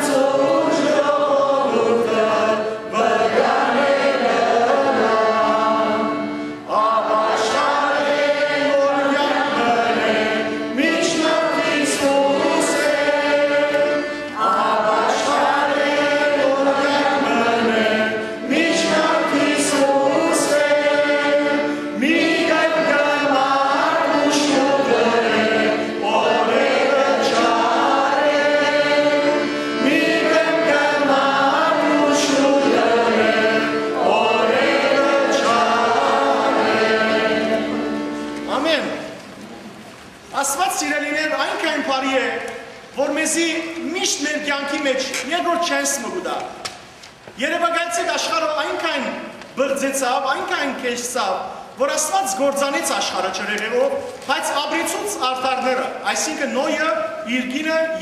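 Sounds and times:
liturgical chant singing: 0.0 - 39.2, 47.4 - 58.0.

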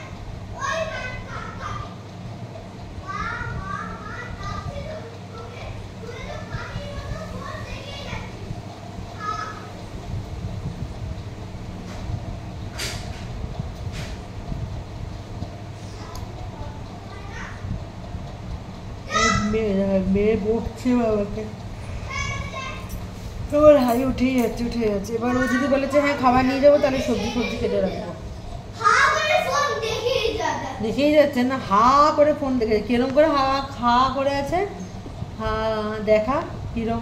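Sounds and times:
children talking and calling out: 0.0 - 10.1, 15.8 - 19.7, 21.6 - 23.1, 25.1 - 31.0
steady low hum: 0.0 - 37.0
woman talking: 19.2 - 21.6, 23.5 - 28.2, 30.8 - 34.8, 35.4 - 37.0.

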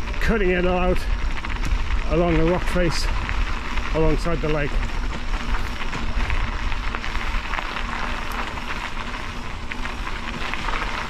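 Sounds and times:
bicycle tyres on gravel: 0.0 - 11.0
gravel crunching: 0.0 - 11.0.

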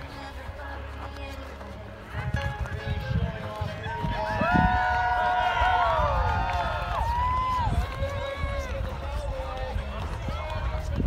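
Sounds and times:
spectators calling out and talking: 0.0 - 11.0
wind rumble on microphone: 0.0 - 11.0.

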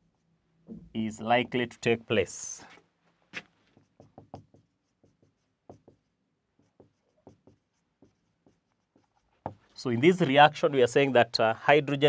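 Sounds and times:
marker pen writing on whiteboard: 2.6 - 11.3.

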